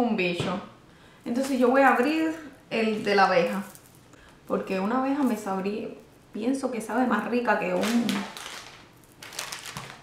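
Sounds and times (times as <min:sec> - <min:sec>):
plastic snack packet crinkling: 0:07.8 - 0:10.0.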